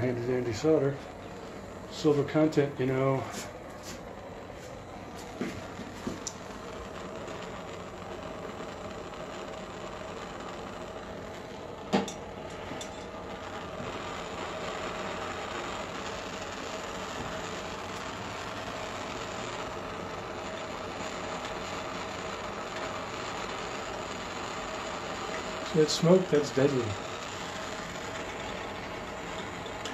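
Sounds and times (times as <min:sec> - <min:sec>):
propane torch hissing: 0:00.0 - 0:29.9.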